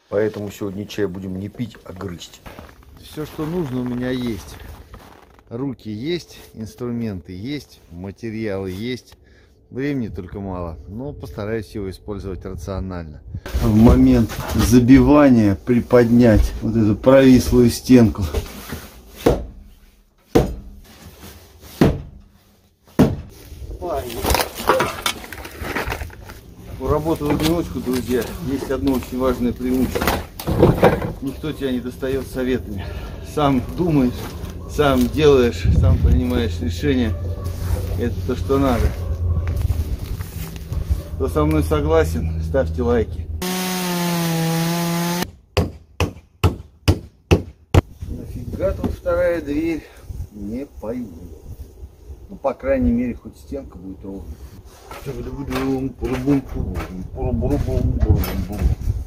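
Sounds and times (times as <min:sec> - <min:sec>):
chainsaw cutting wood: 0:43.4 - 0:45.3.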